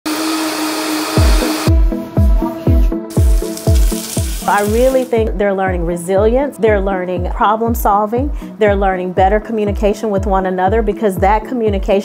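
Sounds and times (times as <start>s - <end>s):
countertop blender running: 0.1s - 1.7s
background music with bass-drum beat: 1.2s - 12.0s.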